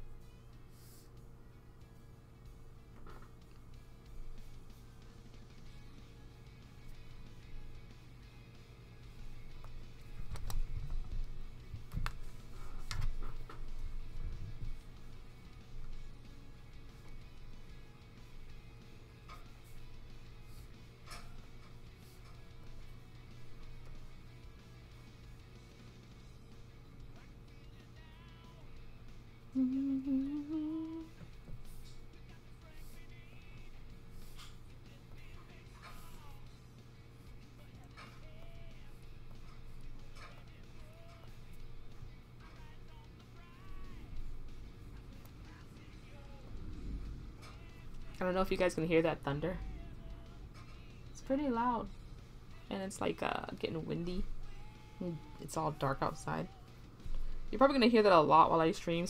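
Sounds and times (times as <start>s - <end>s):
electrical hum: 0.0s - 59.0s
faint background music: 0.0s - 59.0s
woman humming rising note: 29.5s - 31.2s.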